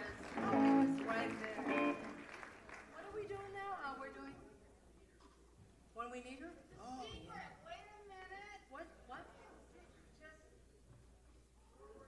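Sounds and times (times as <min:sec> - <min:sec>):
guitar through sound system: 0:00.0 - 0:02.2
people talking on stage: 0:00.0 - 0:11.2.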